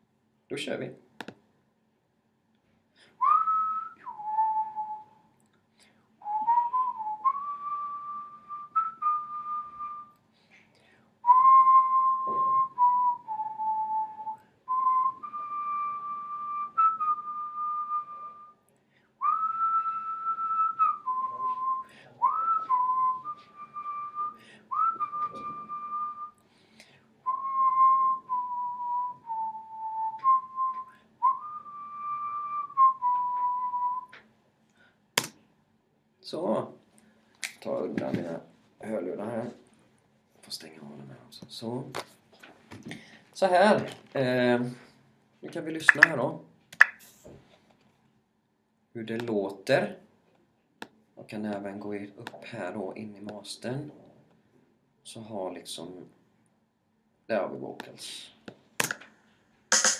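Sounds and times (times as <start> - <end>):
person whistling a melody: 3.2 - 5.3, 6.2 - 10.1, 11.2 - 18.6, 19.2 - 26.4, 27.2 - 34.2.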